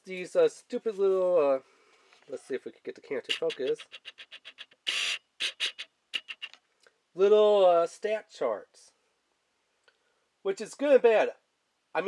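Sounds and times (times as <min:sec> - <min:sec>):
autofocus lens motor ticking: 0:03.3 - 0:06.6.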